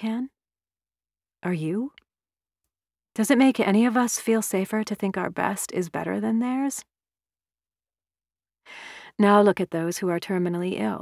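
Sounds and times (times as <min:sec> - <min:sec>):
woman breathing in: 0:08.7 - 0:09.2.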